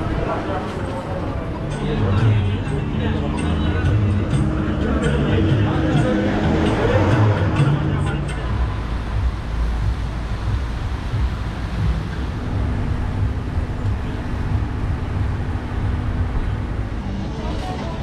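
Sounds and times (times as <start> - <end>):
engine-like hum: 0.0 - 18.0
traffic on a wet road: 4.4 - 18.0.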